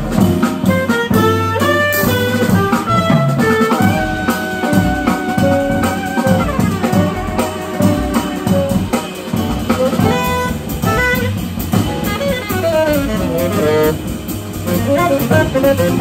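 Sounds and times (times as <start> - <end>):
drums: 0.0 - 16.0
piano: 0.0 - 16.0
upright bass: 0.0 - 16.0
tenor saxophone melody: 0.6 - 16.0.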